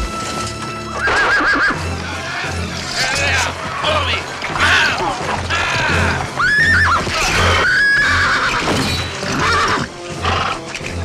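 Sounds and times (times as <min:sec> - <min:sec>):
orchestral music with low pulse: 0:00.0 - 0:11.0
horses whinnying: 0:01.0 - 0:11.0
men shouting: 0:01.9 - 0:07.8.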